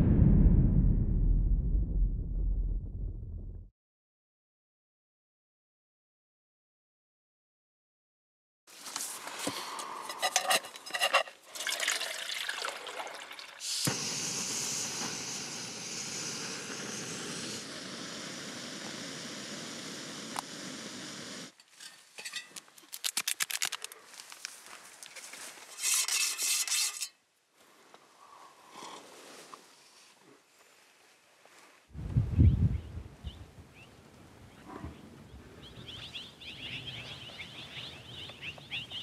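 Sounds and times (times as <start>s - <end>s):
steady even hiss: 13.6s - 21.6s
camping gear rustling and clicking: 21.6s - 26.1s.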